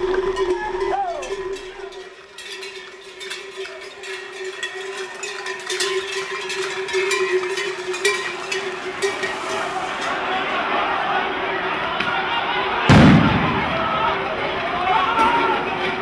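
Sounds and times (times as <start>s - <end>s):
cowbells ringing: 0.0s - 10.8s
hooves clicking and clattering: 0.0s - 10.9s.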